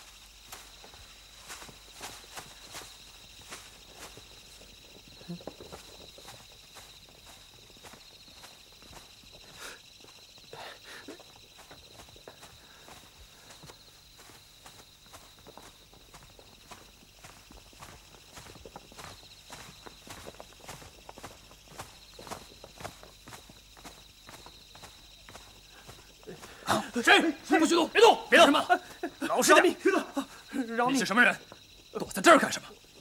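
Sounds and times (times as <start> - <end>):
footsteps through dry undergrowth: 0.0 - 29.2.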